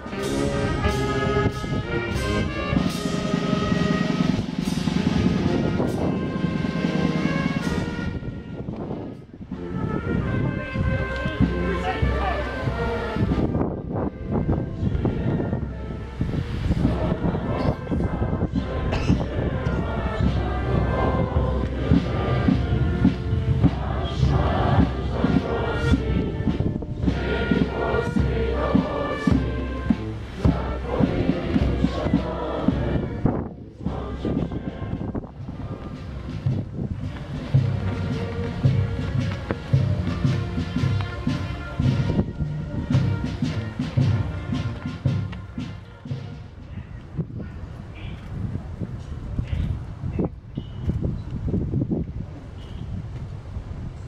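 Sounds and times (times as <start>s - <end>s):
brass band playing slow music: 0.0s - 47.0s.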